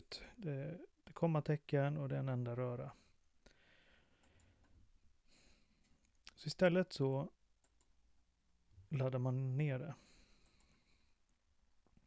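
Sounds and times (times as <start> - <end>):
computer mouse click: 7.6 - 8.0.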